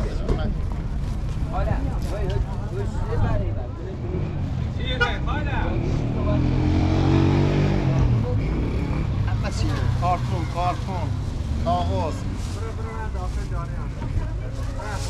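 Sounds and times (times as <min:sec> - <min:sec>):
street noise: 0:00.0 - 0:15.0
vehicle engine passing by: 0:03.8 - 0:13.0.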